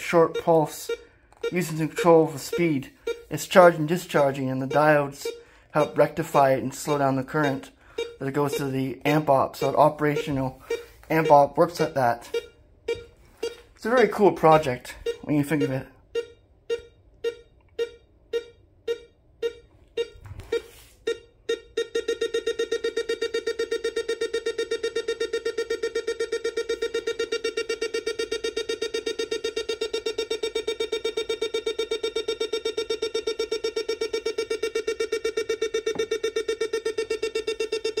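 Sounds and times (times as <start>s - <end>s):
buzzy electronic beeps: 0.0s - 24.1s.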